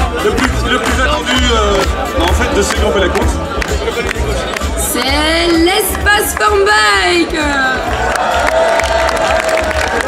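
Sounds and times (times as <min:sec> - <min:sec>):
crowd cheering and clapping: 0:00.0 - 0:10.0.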